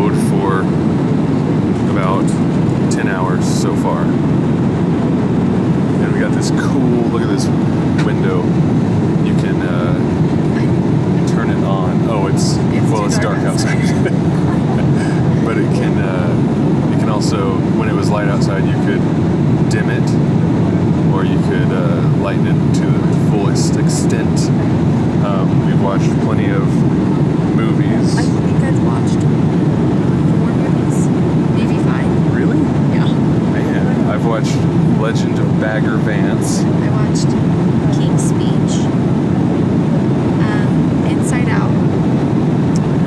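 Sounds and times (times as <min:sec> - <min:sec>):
faint voices: 0:00.0 - 0:00.7, 0:01.3 - 0:04.2, 0:05.8 - 0:08.6, 0:09.2 - 0:29.3, 0:30.1 - 0:38.9, 0:40.4 - 0:41.8
airliner cabin engine roar: 0:00.0 - 0:43.0.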